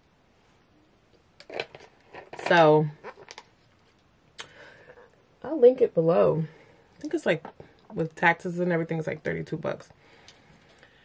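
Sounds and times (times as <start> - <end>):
clicks and breath: 4.4 - 5.1, 10.0 - 11.0.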